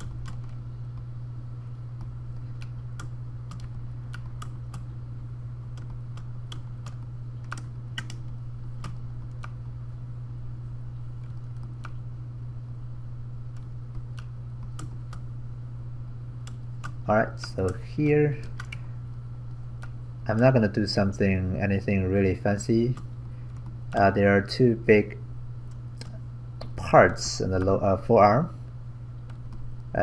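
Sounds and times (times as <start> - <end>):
keyboard and mouse clicks: 0.0 - 1.1, 2.0 - 4.9, 5.8 - 9.7, 13.5 - 15.2, 18.4 - 18.8
steady low hum: 0.0 - 30.0.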